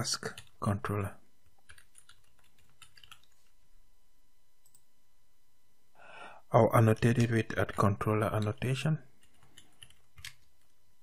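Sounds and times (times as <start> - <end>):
faint keyboard typing: 0.2 - 0.8, 1.4 - 3.6, 4.6 - 4.9, 6.9 - 10.8.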